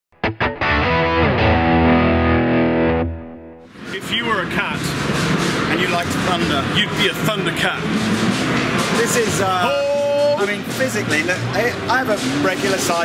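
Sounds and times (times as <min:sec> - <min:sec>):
distorted electric guitar sting: 0:00.2 - 0:03.6.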